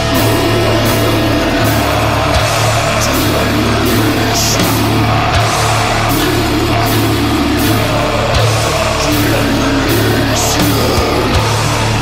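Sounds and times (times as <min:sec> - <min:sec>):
bass guitar: 0:00.0 - 0:12.0
distorted guitar: 0:00.0 - 0:12.0
drums: 0:00.0 - 0:12.0.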